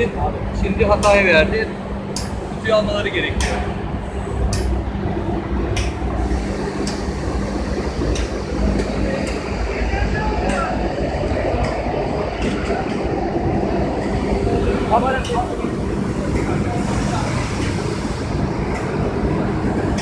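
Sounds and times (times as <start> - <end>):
conveyor machine hum and rumble: 0.0 - 20.0.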